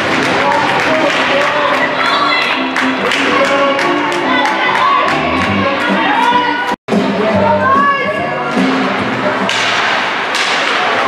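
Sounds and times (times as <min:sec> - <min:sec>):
arena music: 0:00.0 - 0:11.0
hockey sticks and skates on ice: 0:09.5 - 0:11.0.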